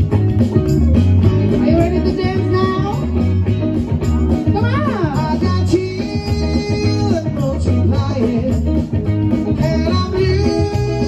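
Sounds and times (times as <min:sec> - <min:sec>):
deep repeating bass line: 0:00.0 - 0:11.0
guitar: 0:00.0 - 0:11.0.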